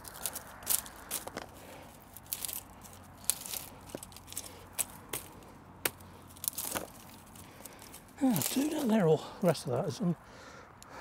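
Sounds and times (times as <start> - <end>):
dry stems crackling and snapping: 0.0 - 10.1.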